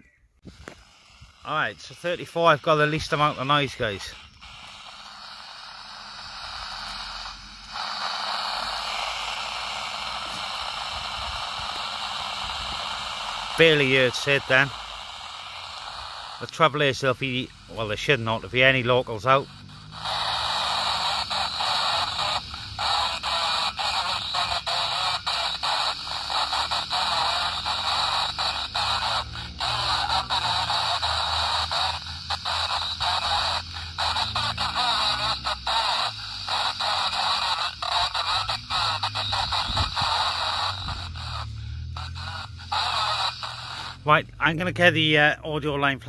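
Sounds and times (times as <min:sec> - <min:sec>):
radio static hiss: 0:00.0 - 0:46.0.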